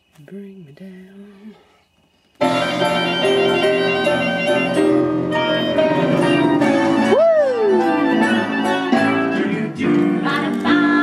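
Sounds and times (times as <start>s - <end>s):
pop song with singing: 5.4s - 11.0s.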